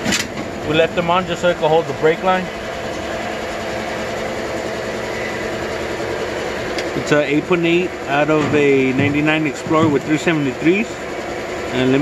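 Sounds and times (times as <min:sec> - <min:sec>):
machine hum with faint whine: 0:00.0 - 0:12.0.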